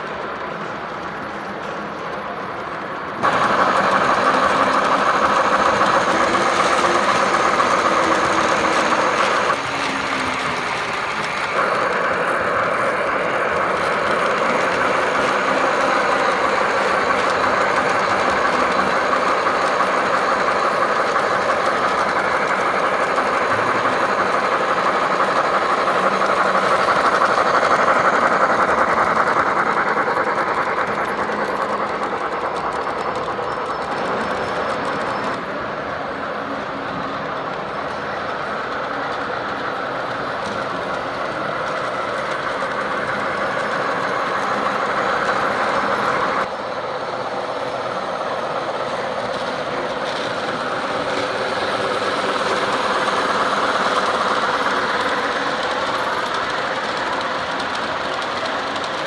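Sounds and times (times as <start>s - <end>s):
model trains rolling on track: 0.0s - 59.0s.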